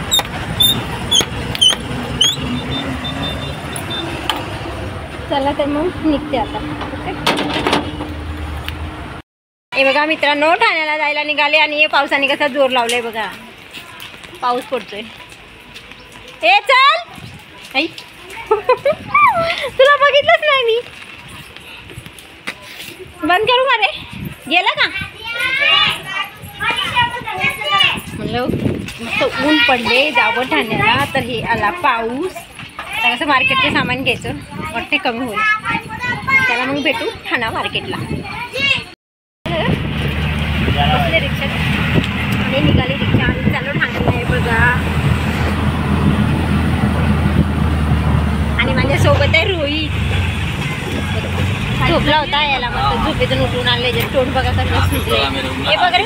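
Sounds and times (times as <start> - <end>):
children talking and calling out: 13.2 - 39.0
auto-rickshaw engine running: 39.5 - 56.0.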